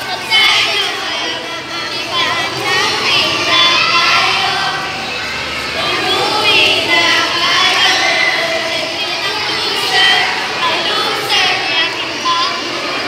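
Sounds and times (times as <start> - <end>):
children shouting and cheering: 0.0 - 13.0.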